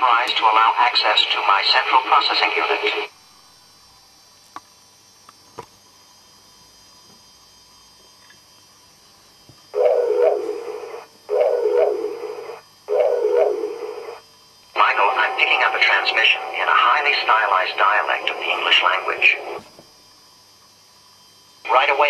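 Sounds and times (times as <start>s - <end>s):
radio-like static bursts: 0.2s - 3.1s, 10.2s - 11.1s, 11.7s - 12.6s, 13.3s - 14.2s, 14.8s - 19.7s, 21.7s - 22.0s.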